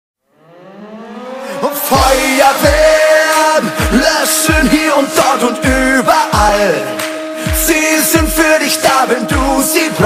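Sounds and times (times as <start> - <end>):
rising whine with overtones: 0.2 - 10.0
person singing: 1.4 - 10.0.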